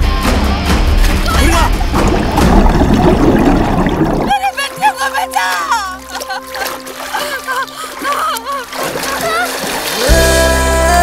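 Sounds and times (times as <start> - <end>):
background music: 0.0 - 11.0
water splashing: 0.6 - 11.0.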